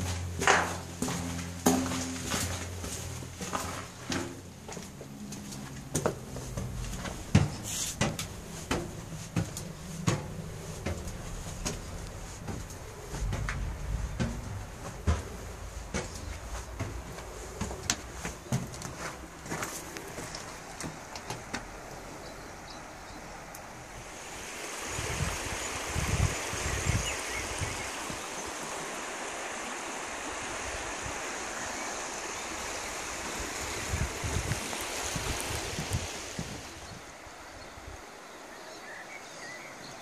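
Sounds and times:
footsteps in a rock tunnel: 0.0s - 22.1s
creek rushing: 0.0s - 40.0s
low thumps: 6.2s - 17.8s.

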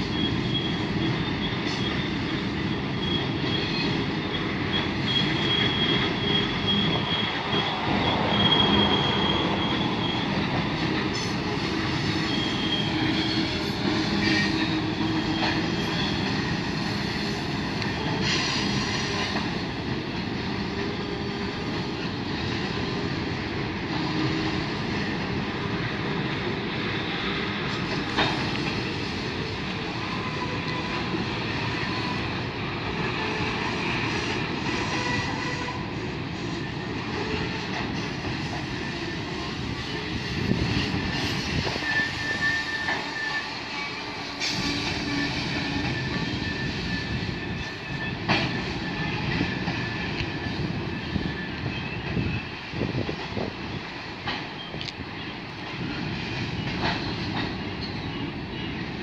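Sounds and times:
high-pitched wheel squeal: 0.0s - 19.4s, 28.8s - 53.0s
freight train cars rumbling past: 0.0s - 59.0s.

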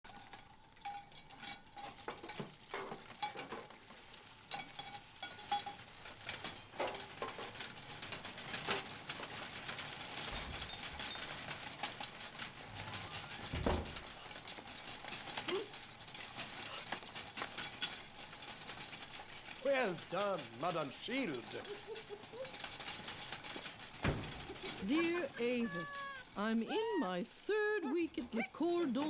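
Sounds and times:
butter sizzling in frying pans: 0.0s - 7.6s
metal utensils scraping pans: 0.1s - 27.2s.

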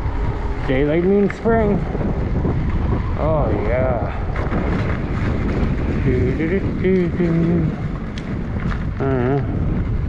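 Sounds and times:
tyres rolling on wet pavement: 0.0s - 10.0s
wind buffeting microphone: 0.0s - 10.0s.

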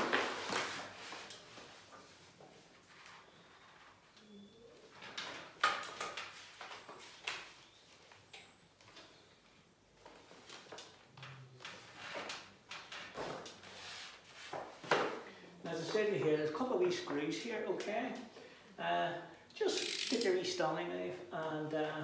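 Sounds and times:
wallpaper rustling and crackling: 0.0s - 18.3s
hands scraping wallpaper: 13.1s - 14.8s.

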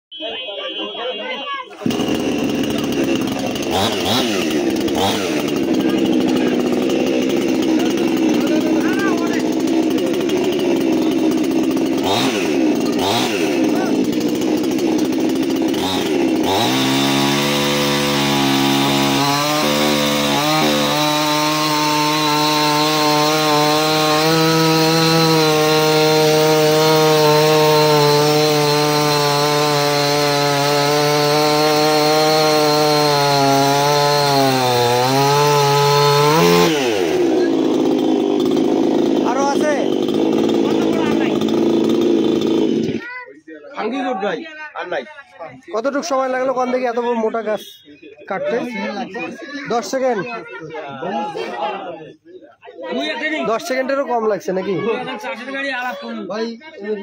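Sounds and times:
chainsaw engine: 0.7s - 44.0s, 45.4s - 51.8s, 53.0s - 56.2s
chainsaw cutting through log: 1.8s - 43.2s.

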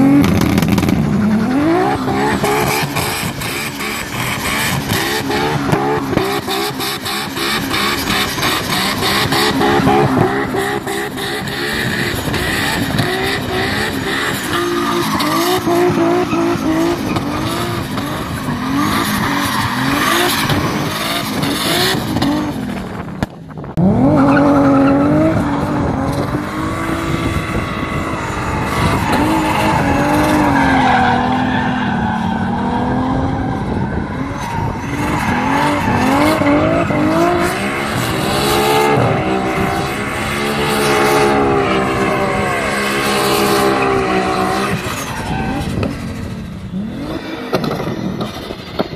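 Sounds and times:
car engine revving hard: 0.0s - 22.8s, 23.7s - 48.9s
tyres skidding on wet tarmac: 0.0s - 22.9s, 24.1s - 48.9s.

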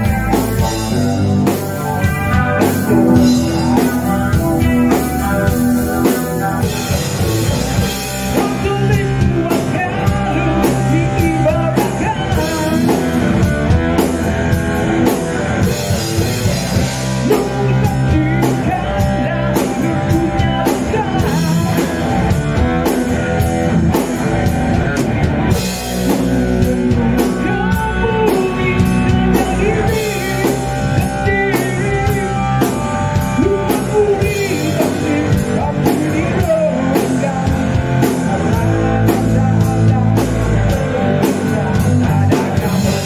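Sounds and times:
rock band playing live: 0.0s - 43.0s.

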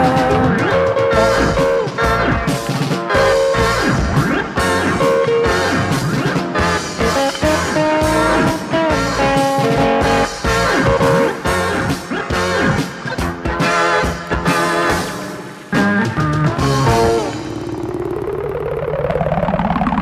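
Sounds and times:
drums with steady beat: 0.0s - 17.7s
electric guitar melody: 0.0s - 18.5s
bass guitar: 0.0s - 20.0s.

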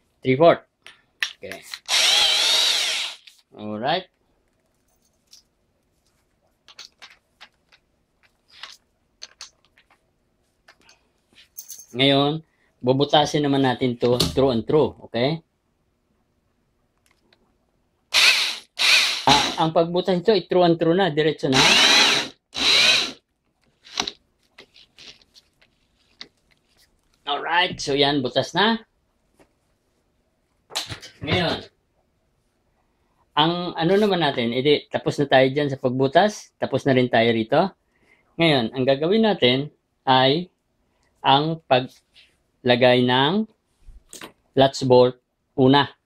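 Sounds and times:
power drill with hole saw: 1.9s - 3.3s, 18.1s - 19.6s, 21.5s - 23.2s
faint handling clicks and rustles: 4.1s - 12.0s, 23.3s - 27.3s
tool handling: 6.6s - 10.0s
light clicks and wood crunching: 23.4s - 27.3s.

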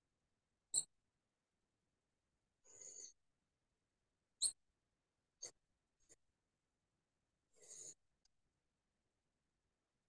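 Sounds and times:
pen scratching on paper: 2.6s - 3.2s, 7.6s - 8.1s.

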